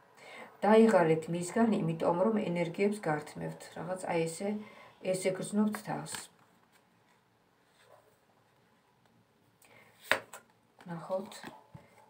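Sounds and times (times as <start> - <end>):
woman speaking: 0.6 - 6.4, 10.8 - 11.6.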